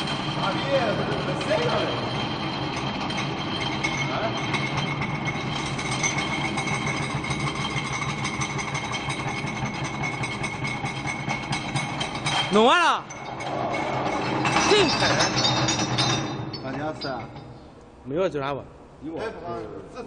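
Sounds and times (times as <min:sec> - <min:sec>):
dense rattle: 0:00.0 - 0:17.6
glass crusher running: 0:00.0 - 0:17.6.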